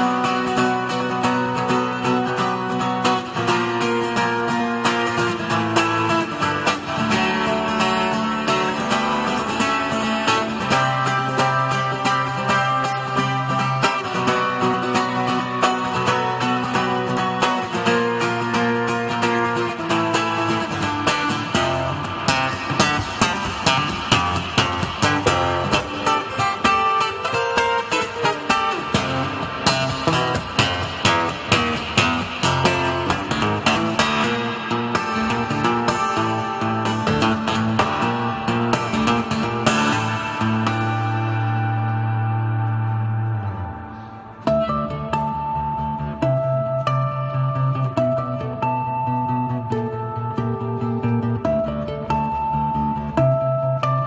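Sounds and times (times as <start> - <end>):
fingerstyle acoustic guitar: 0.0 - 54.0.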